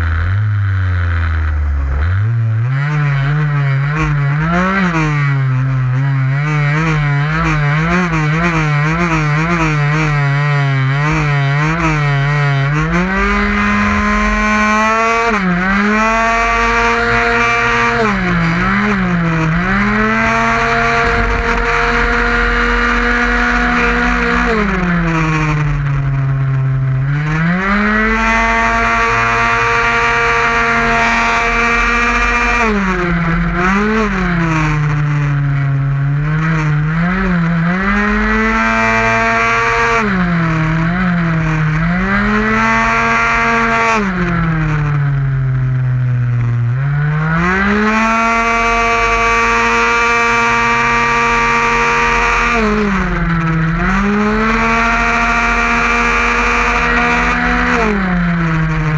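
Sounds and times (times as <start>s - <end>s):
two-stroke scooter engine racing: 0.0s - 58.9s.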